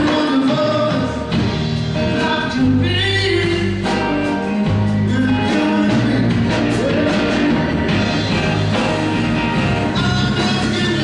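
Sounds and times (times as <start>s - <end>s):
live rock band playing: 0.0s - 11.0s
person singing lead vocal: 0.0s - 11.0s.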